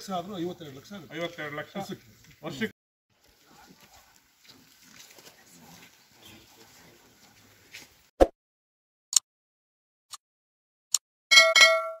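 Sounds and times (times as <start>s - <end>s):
bell chime ringing: 11.3s - 12.0s.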